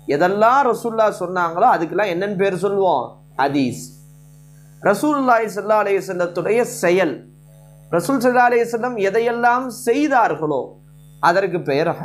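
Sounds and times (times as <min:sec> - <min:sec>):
electrical mains hum: 0:00.0 - 0:12.0
man speaking: 0:00.1 - 0:04.0, 0:04.8 - 0:07.2, 0:07.9 - 0:12.0.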